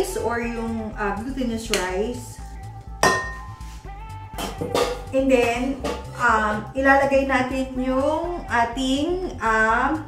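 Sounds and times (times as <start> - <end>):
background music: 0.0 - 10.0
spatula knocking metal bowl: 3.0 - 3.6, 4.4 - 6.2.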